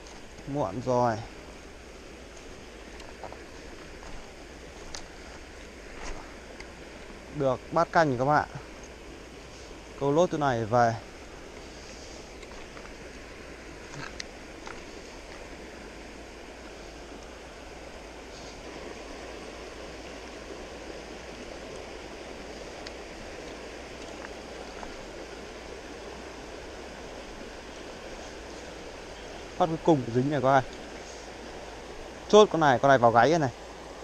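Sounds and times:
stream flowing: 0:00.0 - 0:34.0.

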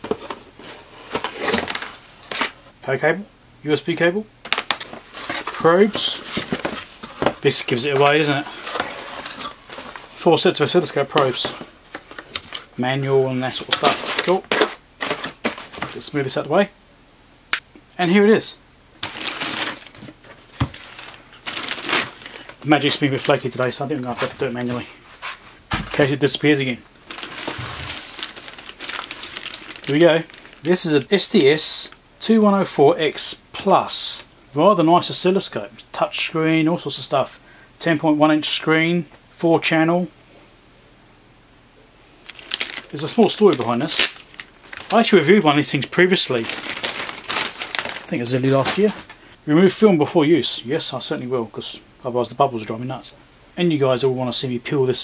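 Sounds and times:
cardboard scraping and rustling: 0:00.0 - 0:02.6, 0:04.6 - 0:12.7, 0:13.5 - 0:16.0, 0:19.0 - 0:26.3, 0:27.1 - 0:30.7, 0:42.3 - 0:45.4, 0:46.2 - 0:49.2
plastic bag crinkling: 0:04.5 - 0:12.8, 0:13.4 - 0:16.1, 0:19.0 - 0:24.8, 0:25.8 - 0:32.0, 0:42.2 - 0:49.2.

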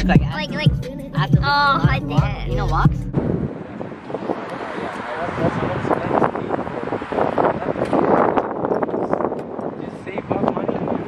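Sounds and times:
wind buffeting microphone: 0:01.4 - 0:11.0.

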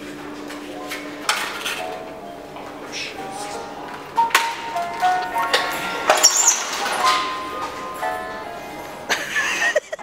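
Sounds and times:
bicycle clanking in metal rack: 0:00.5 - 0:02.0, 0:03.8 - 0:08.7.

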